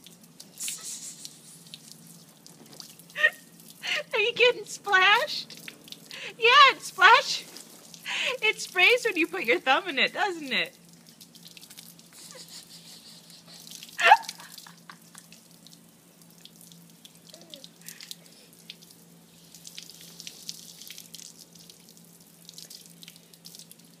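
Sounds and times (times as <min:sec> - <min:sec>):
hose water splashing on tiles: 0:00.0 - 0:24.0.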